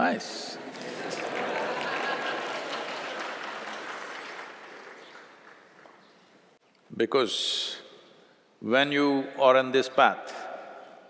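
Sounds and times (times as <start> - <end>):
audience applauding: 0.6 - 6.2.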